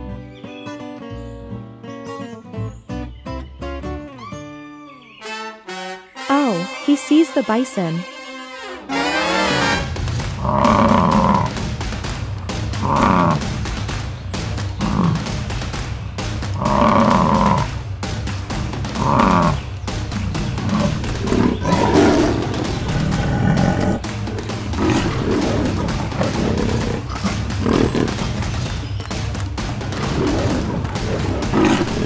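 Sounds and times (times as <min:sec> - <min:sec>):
background music: 0:00.0 - 0:32.0
cartoon lion roars and growls: 0:10.4 - 0:11.6, 0:12.6 - 0:13.6, 0:14.8 - 0:15.4, 0:16.6 - 0:17.7, 0:18.9 - 0:19.6, 0:20.2 - 0:28.4, 0:29.9 - 0:32.0.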